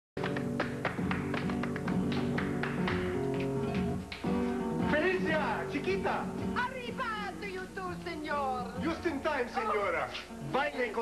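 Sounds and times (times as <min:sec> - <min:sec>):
flamenco music: 0:00.2 - 0:11.0.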